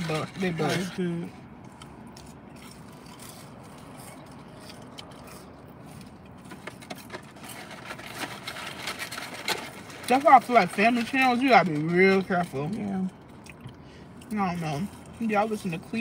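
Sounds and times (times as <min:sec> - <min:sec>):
paper bags crinkling: 0:06.5 - 0:12.7.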